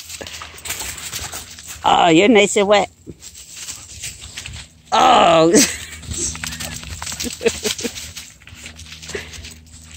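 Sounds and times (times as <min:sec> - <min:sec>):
rustling in dry leaves: 0:00.0 - 0:09.9.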